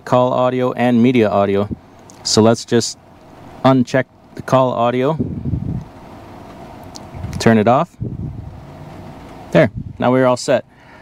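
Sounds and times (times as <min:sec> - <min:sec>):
low hum inside truck cab: 0:00.0 - 0:11.0.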